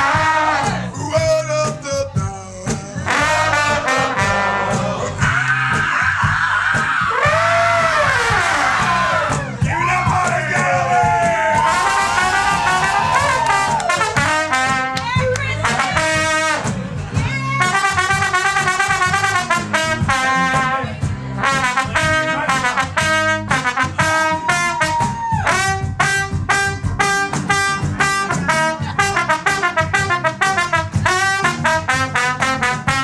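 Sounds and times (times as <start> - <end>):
horn-like lead melody: 0.0 - 5.6, 7.1 - 33.0.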